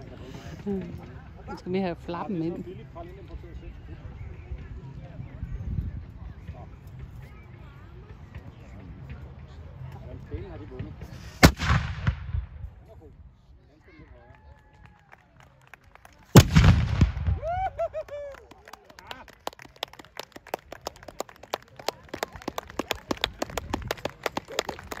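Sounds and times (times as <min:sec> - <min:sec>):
cannon shots with echo: 0:11.4 - 0:12.6, 0:16.4 - 0:17.4
people clapping: 0:14.2 - 0:16.4, 0:17.4 - 0:25.0.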